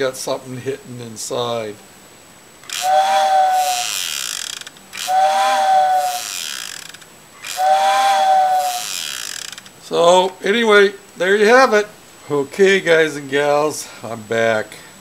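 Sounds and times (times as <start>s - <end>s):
breathy steam whistle blasts: 2.7s - 4.2s, 5.0s - 6.5s, 7.4s - 9.1s.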